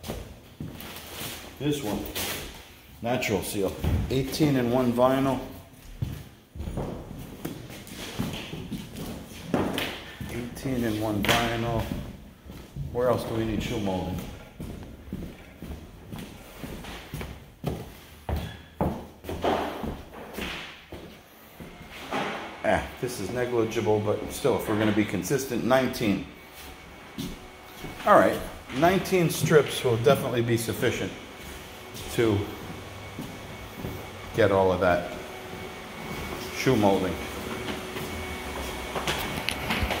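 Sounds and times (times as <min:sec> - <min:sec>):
footsteps on hardwood floor: 0:00.0 - 0:02.0, 0:03.6 - 0:22.4, 0:26.5 - 0:40.0
low machine hum: 0:21.2 - 0:40.0.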